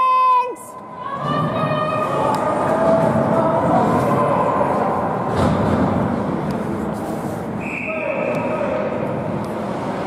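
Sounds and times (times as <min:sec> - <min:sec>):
noisy din in ice rink: 0:00.0 - 0:10.0.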